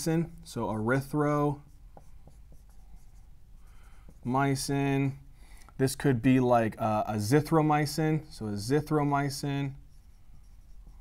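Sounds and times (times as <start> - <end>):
marker writing on whiteboard: 0.8 - 5.6, 8.2 - 11.0.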